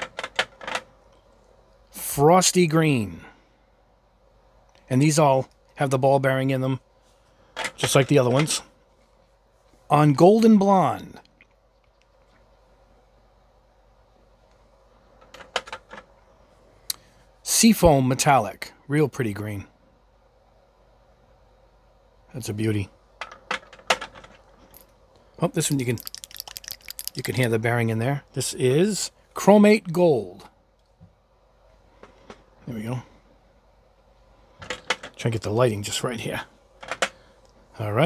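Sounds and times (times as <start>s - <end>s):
glass bottles clicking: 25.8s - 27.2s.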